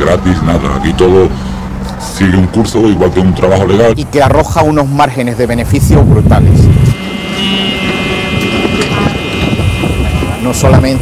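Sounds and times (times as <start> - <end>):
boat motor running: 0.0 - 11.0
high-pitched whine: 2.7 - 11.0
wind on microphone: 5.5 - 11.0.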